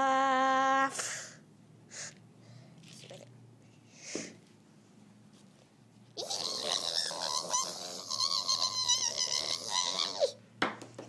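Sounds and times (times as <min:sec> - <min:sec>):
high-pitched vocal squeal: 0:06.2 - 0:10.4.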